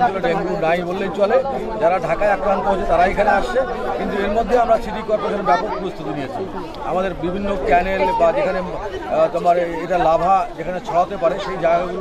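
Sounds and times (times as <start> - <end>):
man speaking: 0.0 - 12.0
murmur of voices: 0.0 - 12.0.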